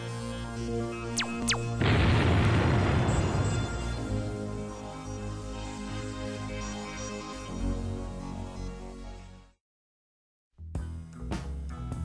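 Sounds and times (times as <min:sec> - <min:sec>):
loud boom with rush of noise: 0:01.5 - 0:04.4.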